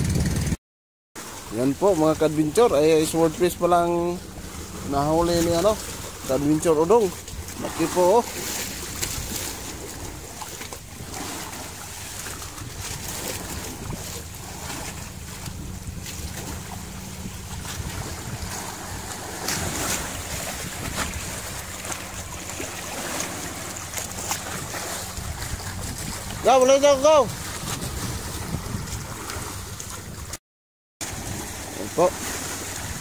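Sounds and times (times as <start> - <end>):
wind buffeting microphone: 0.0 - 0.6, 1.8 - 30.4, 31.0 - 33.0
boat engine droning: 1.2 - 30.3, 31.0 - 33.0
water splashing against hull: 1.2 - 30.4, 31.0 - 33.0.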